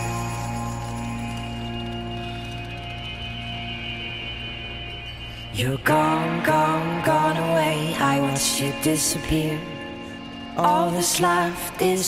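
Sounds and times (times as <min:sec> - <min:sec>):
soft held chord: 0:00.0 - 0:12.0.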